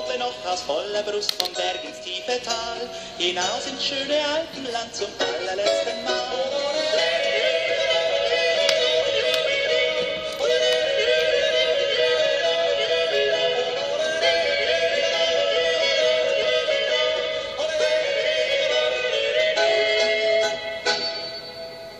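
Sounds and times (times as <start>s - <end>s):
man yodeling: 0.0s - 21.2s
instrumental accompaniment: 5.0s - 21.9s.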